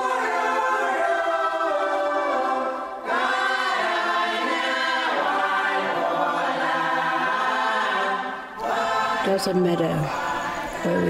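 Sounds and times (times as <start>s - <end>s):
women's choir singing a hymn: 0.0s - 11.0s.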